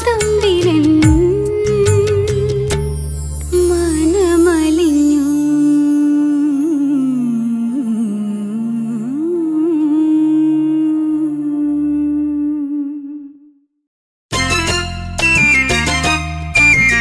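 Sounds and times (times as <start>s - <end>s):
person humming a melody: 5.3s - 13.6s.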